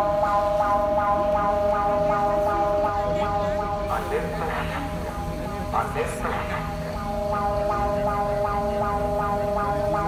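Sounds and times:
pulsing warning siren: 0:00.0 - 0:10.0.

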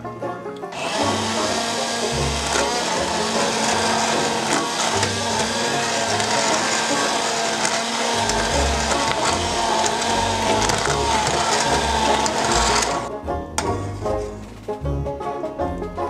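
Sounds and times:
immersion blender motor hum: 0:00.7 - 0:13.1
liquid churning: 0:00.8 - 0:13.1.

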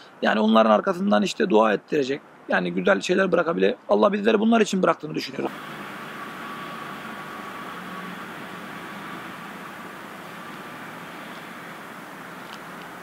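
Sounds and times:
distant traffic hum: 0:05.4 - 0:13.0.

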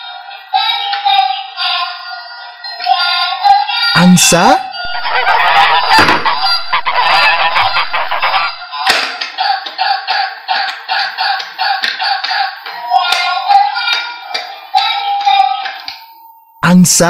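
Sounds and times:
toy electronic honking: 0:04.8 - 0:08.6.

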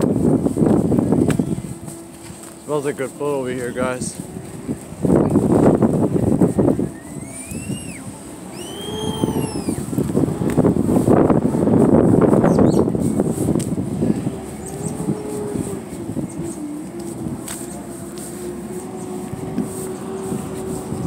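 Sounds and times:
microphone rustling and buffeting: 0:00.0 - 0:21.0
whistle-like cries: 0:06.8 - 0:09.9.

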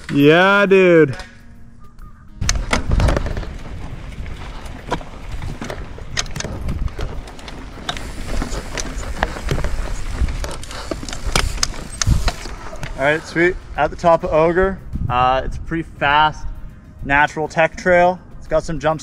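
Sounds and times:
bike rattling clicks and knocks: 0:02.4 - 0:13.2
bike tyres rumbling on dirt: 0:02.4 - 0:14.1.

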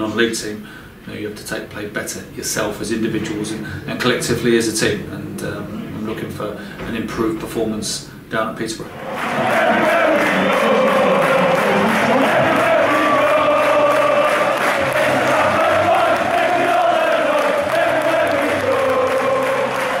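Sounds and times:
crowd singing in unison: 0:08.9 - 0:20.0.

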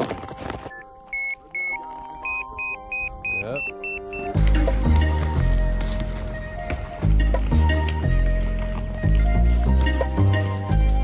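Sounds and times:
background music: 0:00.0 - 0:11.0
avalanche transceiver beeping: 0:00.6 - 0:04.4.

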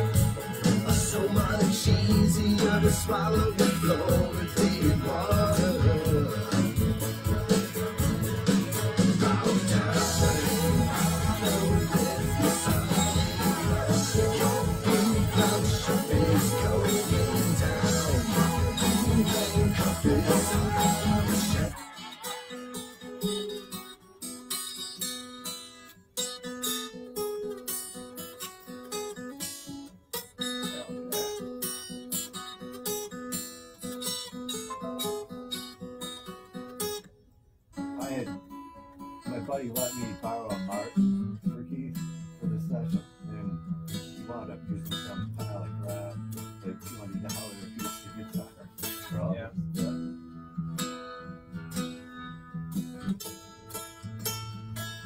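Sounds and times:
bass line: 0:00.0 - 0:21.8
picked and strummed guitar: 0:00.0 - 0:55.0.

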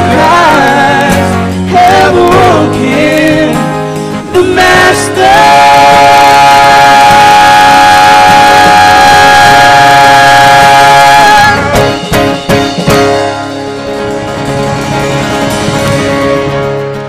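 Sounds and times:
live band playing: 0:00.0 - 0:17.0.

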